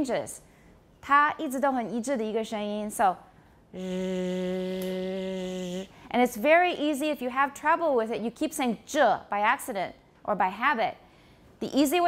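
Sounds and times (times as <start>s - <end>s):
woman sustaining buzzing zh sound: 3.7s - 6.1s.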